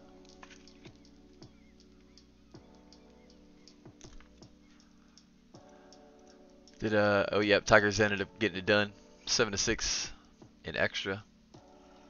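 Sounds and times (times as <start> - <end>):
background music of sustained chords: 0.0 - 12.0.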